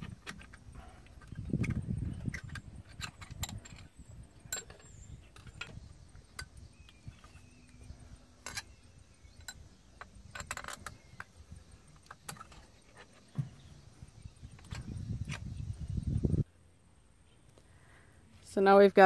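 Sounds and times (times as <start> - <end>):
metal tools clicking and clinking: 0.2 - 6.6, 8.4 - 11.3.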